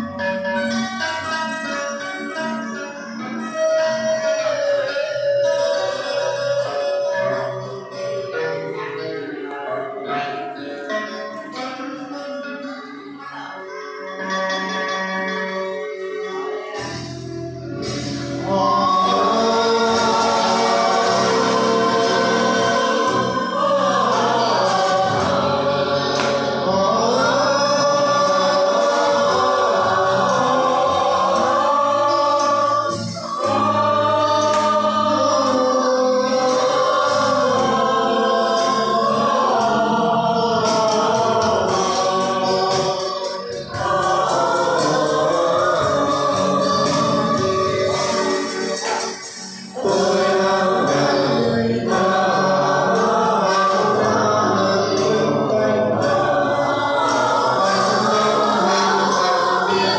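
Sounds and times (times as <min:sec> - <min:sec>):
group of voices singing: 0:16.3 - 0:59.9.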